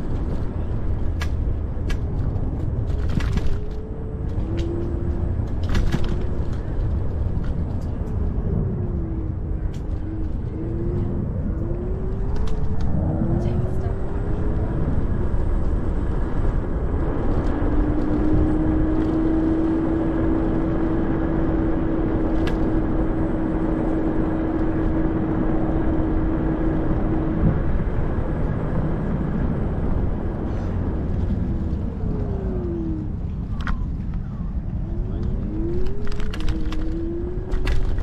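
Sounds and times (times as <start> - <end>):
wind and tyre rumble: 0.0 - 38.0.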